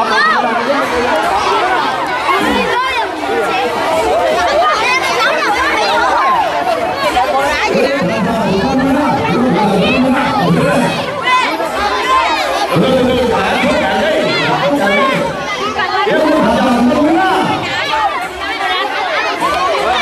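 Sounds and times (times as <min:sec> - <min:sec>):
adult voices: 0:00.0 - 0:20.0
crowd chattering and calling: 0:00.0 - 0:20.0.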